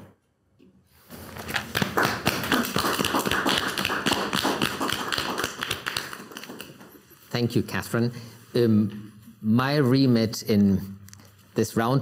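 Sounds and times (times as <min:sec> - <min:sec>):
people applauding: 0:01.4 - 0:07.1.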